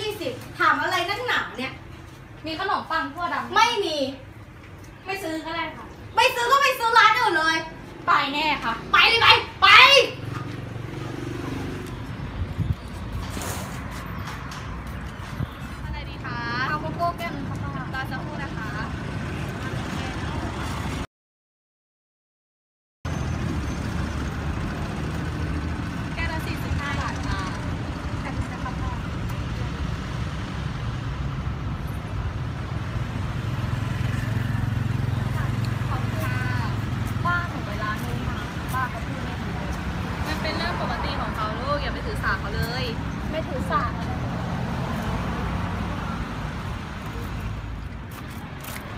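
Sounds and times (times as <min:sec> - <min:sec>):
traffic rumble: 0:00.0 - 0:21.1, 0:23.1 - 0:48.9
people's voices: 0:26.1 - 0:30.1, 0:34.1 - 0:48.8.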